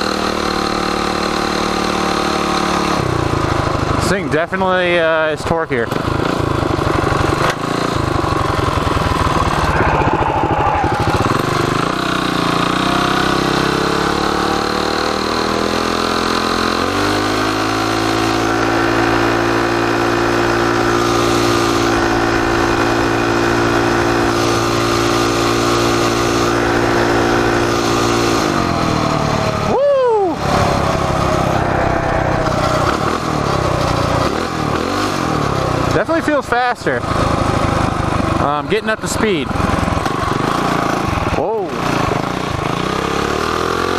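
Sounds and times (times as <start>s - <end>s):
minibike engine revving: 0.0s - 43.9s.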